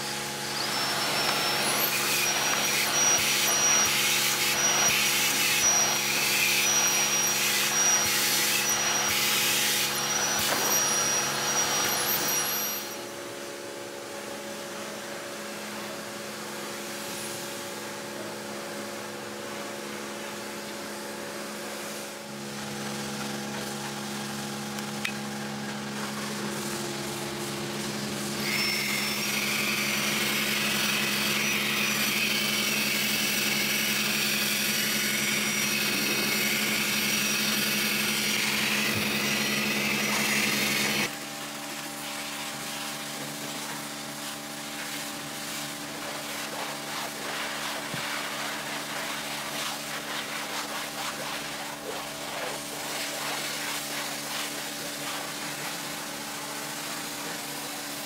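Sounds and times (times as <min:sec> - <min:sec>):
vacuum cleaner motor humming: 0:00.0 - 0:13.2, 0:22.2 - 0:48.6.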